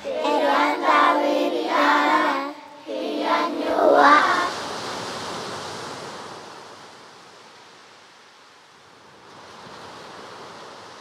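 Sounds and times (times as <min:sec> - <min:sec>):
ocean waves washing: 0:00.0 - 0:07.9.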